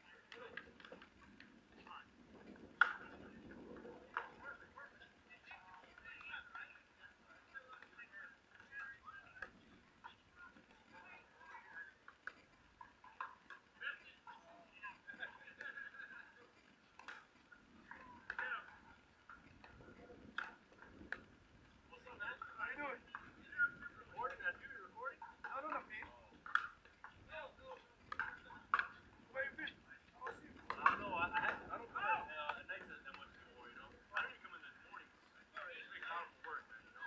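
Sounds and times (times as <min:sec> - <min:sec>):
voices talking: 0:00.0 - 0:37.0.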